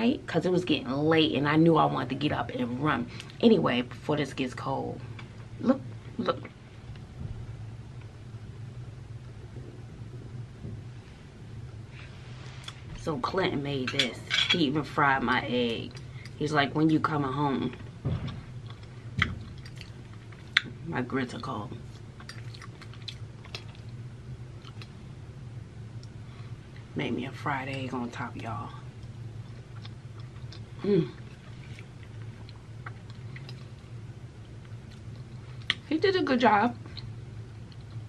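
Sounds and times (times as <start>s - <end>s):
steady low hum: 0.0s - 38.0s
person chewing food: 18.3s - 20.7s, 21.9s - 25.0s, 29.0s - 35.8s.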